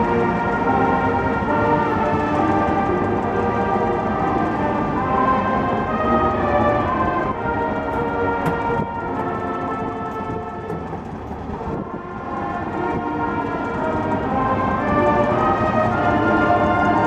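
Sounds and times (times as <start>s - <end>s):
marching band brass and winds: 0.0s - 17.0s.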